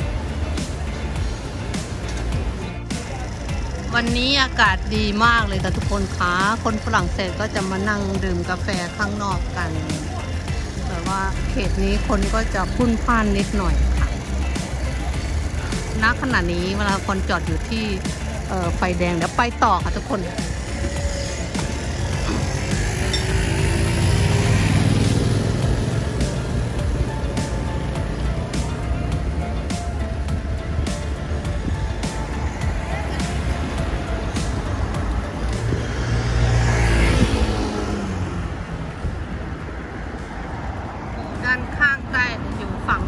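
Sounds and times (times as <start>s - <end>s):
city traffic rumble: 0.0s - 43.0s
vehicles passing close by: 0.0s - 43.0s.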